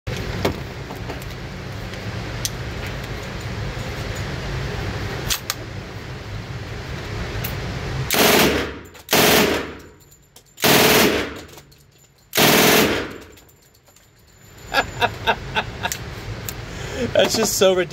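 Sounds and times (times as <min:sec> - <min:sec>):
submachine gun bursts: 0:08.1 - 0:09.8, 0:10.6 - 0:11.5, 0:12.3 - 0:13.3.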